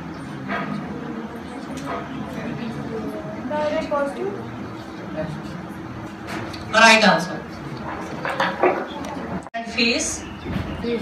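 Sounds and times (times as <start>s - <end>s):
low murmuring voices: 0.0s - 11.0s.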